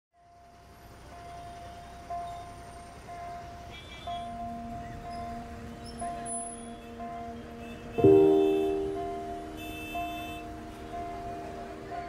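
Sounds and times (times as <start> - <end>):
low city traffic rumble: 0.2 - 12.0
high musical note: 8.0 - 11.6.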